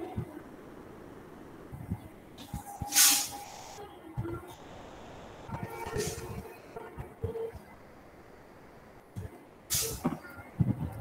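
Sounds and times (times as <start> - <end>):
faint background noise: 0.0 - 11.0
short hiss: 2.4 - 3.8, 4.5 - 6.6, 9.7 - 10.2.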